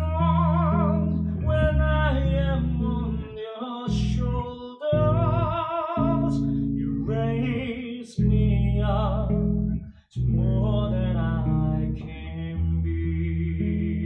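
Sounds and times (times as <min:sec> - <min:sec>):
man singing with vibrato: 0:00.0 - 0:14.0
plucked electric bass guitar: 0:00.0 - 0:14.0.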